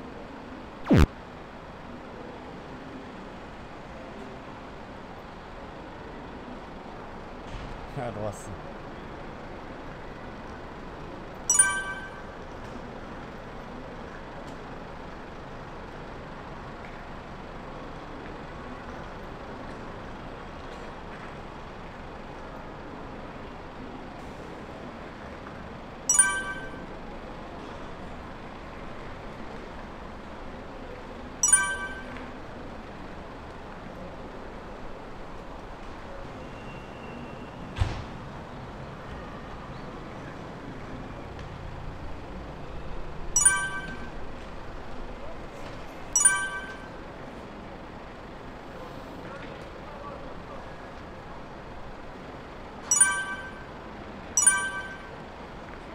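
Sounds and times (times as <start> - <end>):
outdoor background noise: 0.0 - 55.9.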